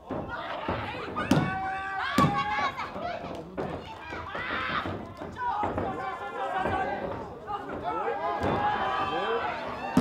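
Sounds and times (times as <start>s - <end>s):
women shouting and yelling: 0.1s - 10.0s.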